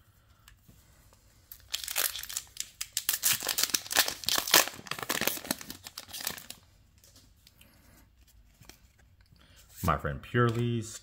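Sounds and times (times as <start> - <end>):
foil wrapper crinkling and tearing: 1.5 - 6.6.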